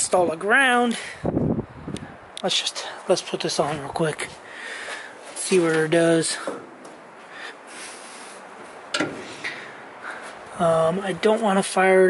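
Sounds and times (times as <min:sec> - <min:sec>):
steady background hiss: 0:00.0 - 0:12.0
handling noise of parts: 0:08.4 - 0:10.5.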